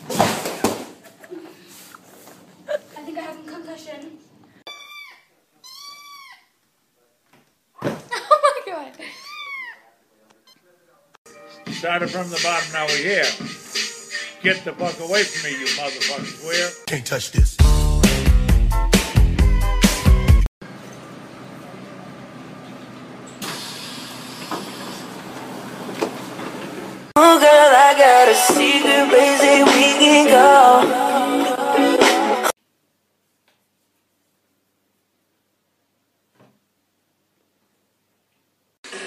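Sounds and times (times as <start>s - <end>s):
kitten meowing: 4.7s - 6.5s.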